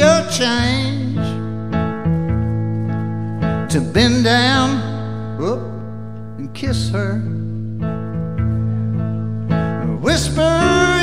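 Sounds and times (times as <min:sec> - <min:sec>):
country band playing: 0:00.0 - 0:11.0.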